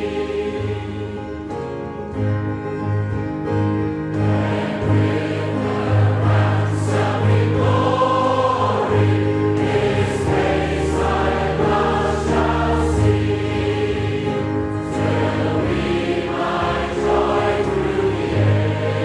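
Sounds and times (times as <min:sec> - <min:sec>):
choir singing a hymn: 0:00.0 - 0:02.1, 0:04.1 - 0:19.0
low accompaniment: 0:00.0 - 0:19.0.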